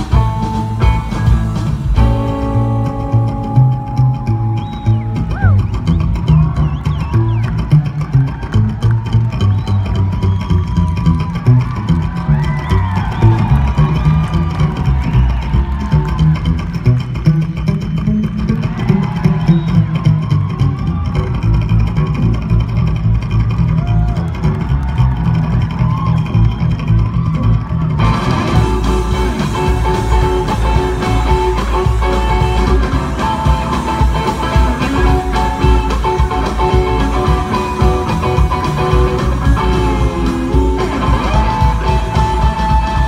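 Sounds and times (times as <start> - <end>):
electric guitar lines: 0.0 - 43.0
upright bass playing low notes: 0.0 - 43.0.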